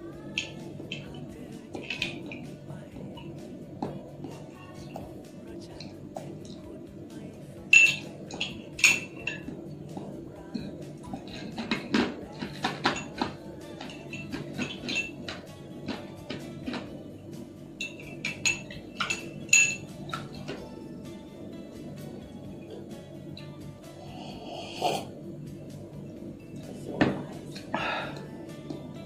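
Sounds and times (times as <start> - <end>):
background music: 0.0 - 29.0
metal spoon clinking on glass: 7.7 - 9.5, 11.2 - 16.9, 17.8 - 20.6.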